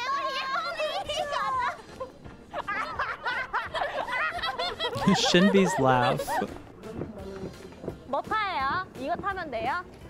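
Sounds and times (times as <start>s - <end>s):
young woman laughing: 2.0s - 6.6s.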